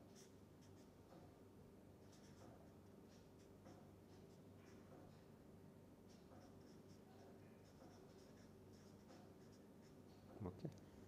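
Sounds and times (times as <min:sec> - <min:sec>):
marker pen scratching on paper: 0:00.0 - 0:01.4, 0:02.0 - 0:05.3, 0:06.0 - 0:10.3.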